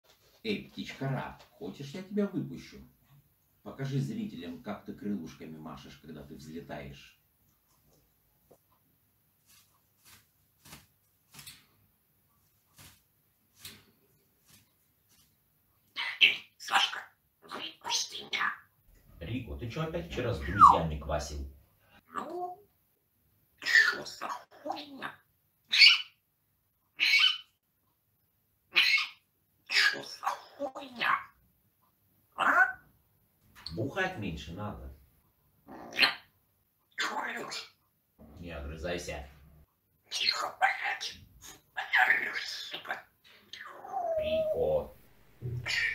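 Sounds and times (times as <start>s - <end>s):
parrot wings flapping: 9.5s - 11.6s, 12.7s - 14.7s
parrot sharp calls: 15.9s - 18.6s, 23.6s - 26.2s, 27.0s - 27.5s, 28.7s - 31.4s, 32.4s - 32.8s, 41.8s - 45.9s
parrot speech-like chatter: 16.0s - 18.6s, 22.1s - 22.6s, 23.6s - 26.0s, 28.7s - 31.3s, 32.4s - 32.8s, 37.0s - 37.8s, 40.1s - 45.9s.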